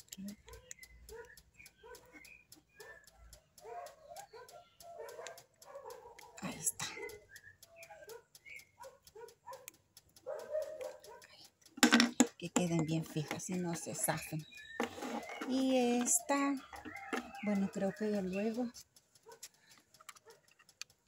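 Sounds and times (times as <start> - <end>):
plastic bottle caps clicking: 11.7 - 17.9.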